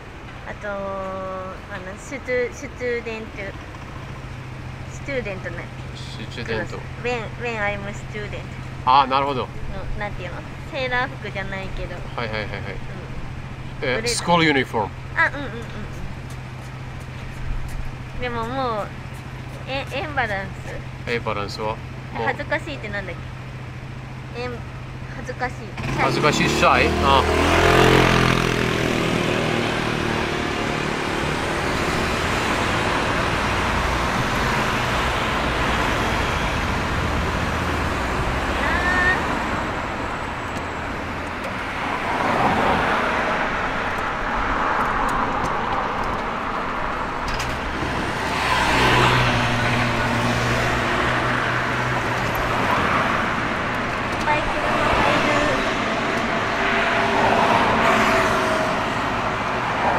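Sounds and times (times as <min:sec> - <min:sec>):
cars driving past: 0:00.0 - 0:59.9.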